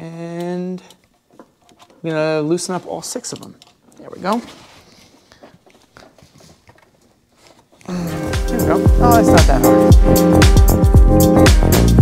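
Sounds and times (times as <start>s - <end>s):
music with a beat: 7.9s - 12.0s.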